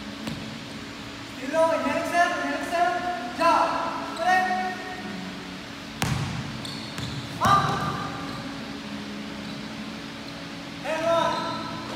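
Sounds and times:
steady low hum: 0:00.0 - 0:11.9
basketball bouncing on wooden floor: 0:06.0 - 0:08.2.

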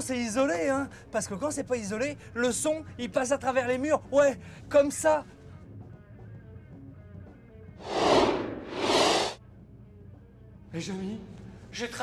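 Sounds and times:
whoosh sound effect: 0:07.8 - 0:09.4.

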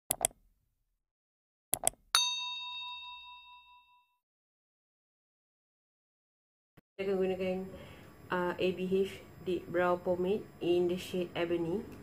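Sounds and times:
quick clicks: 0:01.8 - 0:02.0
bright bell ding: 0:02.2 - 0:04.2.

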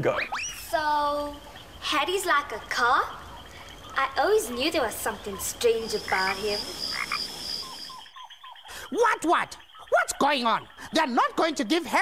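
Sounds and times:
falling frog calls: 0:00.0 - 0:12.0
high pulsing insect trill: 0:00.0 - 0:12.0.

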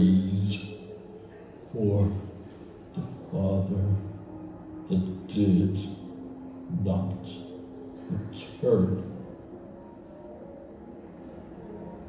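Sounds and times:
low ambient drone: 0:00.0 - 0:12.0.

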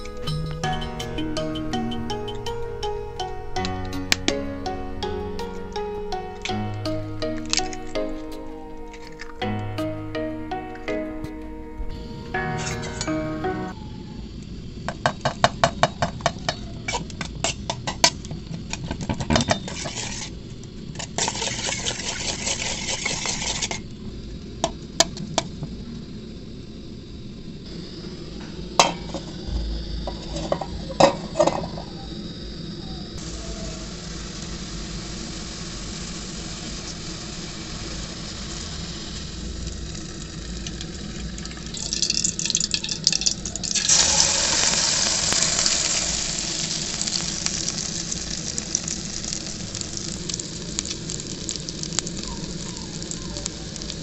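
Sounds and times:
batter sizzling in hot oil: 0:19.5 - 0:23.8, 0:33.2 - 0:54.0.

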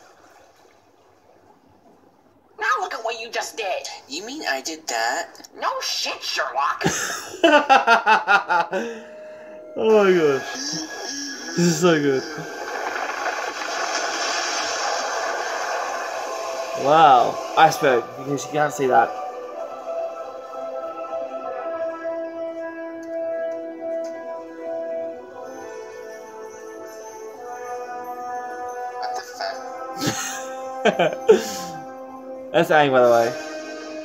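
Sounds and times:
cartoon water rushing sound: 0:09.9 - 0:18.2.

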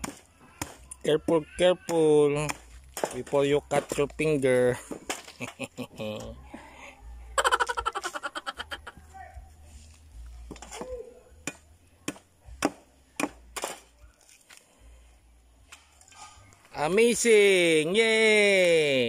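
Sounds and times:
people laughing: 0:05.2 - 0:06.6, 0:07.3 - 0:09.1
coconut husk tearing and cracking: 0:13.7 - 0:14.7.

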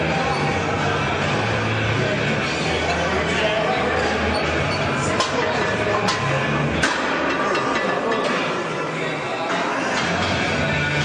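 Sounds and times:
indistinct voices: 0:00.0 - 0:11.0
music: 0:00.0 - 0:11.0.

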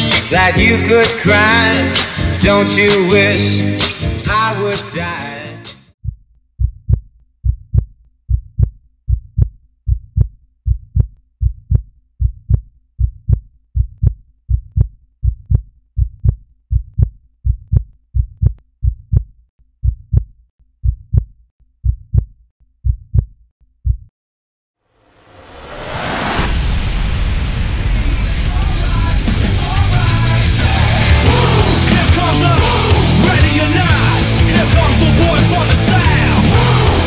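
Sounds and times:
heartbeat thumps: 0:06.0 - 0:24.1
song: 0:28.3 - 0:37.0.

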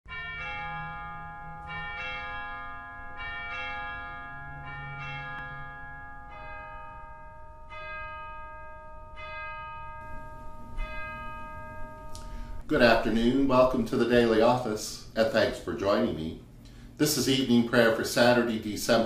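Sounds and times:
church bells ringing: 0:00.1 - 0:19.0.

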